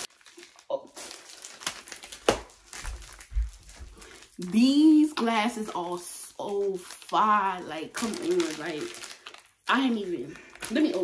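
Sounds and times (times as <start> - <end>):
plastic bag rustling: 0.0 - 11.0.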